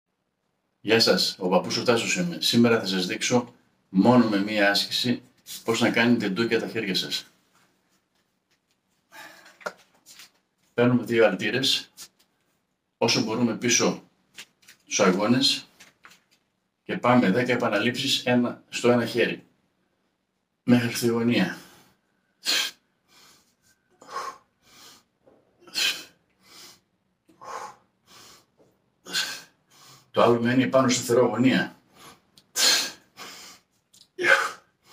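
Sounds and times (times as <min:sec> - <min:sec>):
soft rustling: 0:07.3 - 0:10.8, 0:11.9 - 0:12.8, 0:14.3 - 0:16.7.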